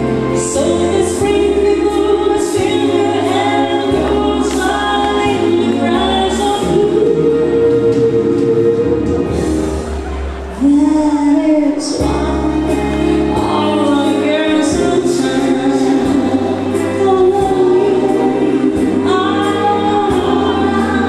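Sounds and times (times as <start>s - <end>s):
woman singing into microphone: 0.0s - 9.7s, 10.5s - 21.0s
amplified instrumental backing: 0.0s - 21.0s.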